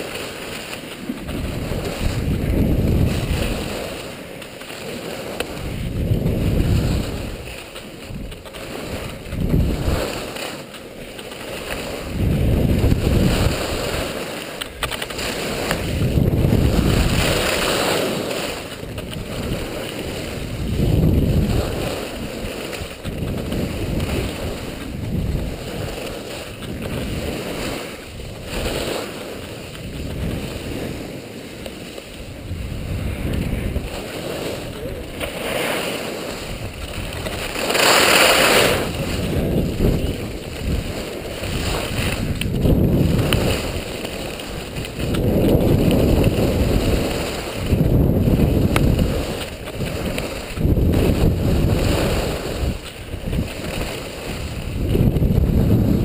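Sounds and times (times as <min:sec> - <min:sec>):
skis sliding on packed snow: 0:00.0 - 0:56.0
wind buffeting microphone: 0:00.0 - 0:56.0.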